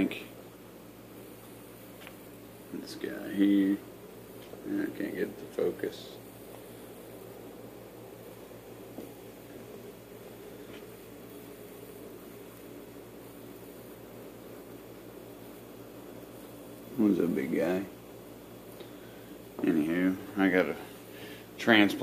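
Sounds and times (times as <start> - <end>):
faint hiss: 0.0 - 22.0.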